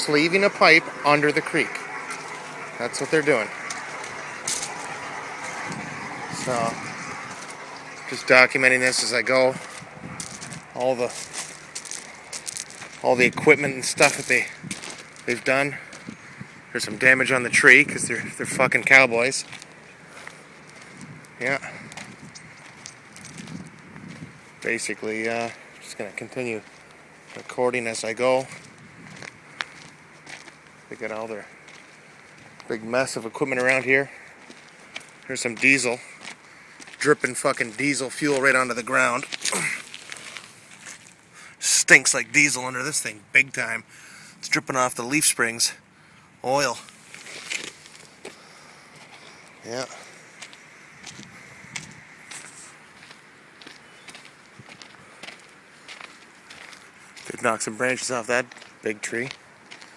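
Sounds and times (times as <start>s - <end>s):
faint footsteps on gravel: 0.0s - 45.8s, 46.5s - 59.9s
steady background hiss: 0.0s - 59.9s.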